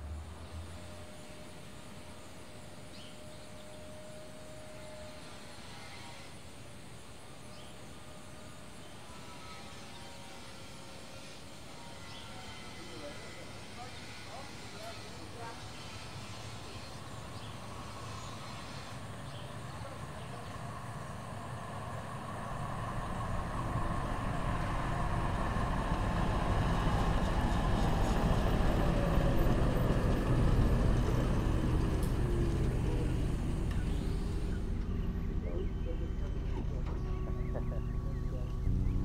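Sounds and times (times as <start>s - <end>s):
low rumble: 29.3s - 39.0s.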